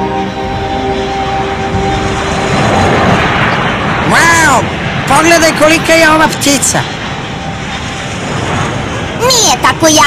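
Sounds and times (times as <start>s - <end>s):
soundtrack music held notes: 0.0s - 9.2s
low-flying jet overhead: 0.0s - 10.0s.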